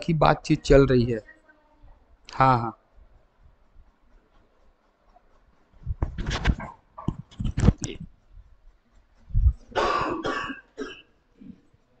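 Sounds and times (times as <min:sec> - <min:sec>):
person coughing: 0:09.7 - 0:11.6.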